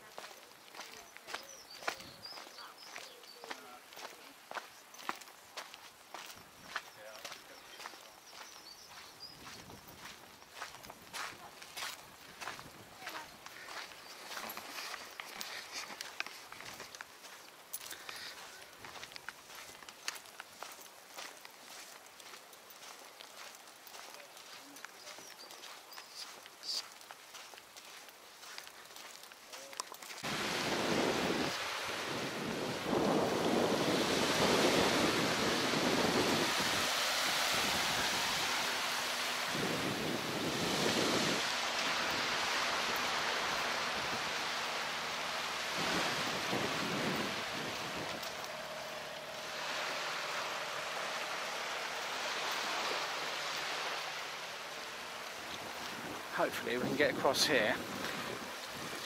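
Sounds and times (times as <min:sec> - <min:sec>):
small waves washing on sand: 0:00.0 - 0:59.0
wind buffeting microphone: 0:30.2 - 0:50.0.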